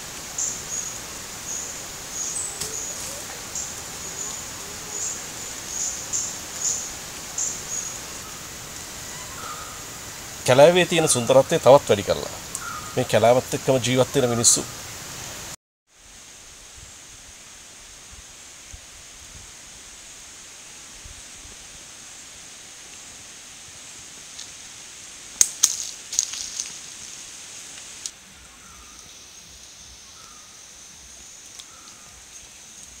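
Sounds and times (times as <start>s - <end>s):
rustling crackles of leaves: 0.0s - 33.0s
steady high hiss: 0.0s - 33.0s
faint short calls: 2.1s - 6.9s.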